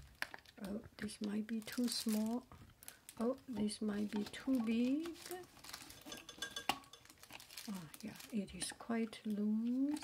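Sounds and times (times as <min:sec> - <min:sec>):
rubbing and handling of silicone lid: 0:03.2 - 0:10.0.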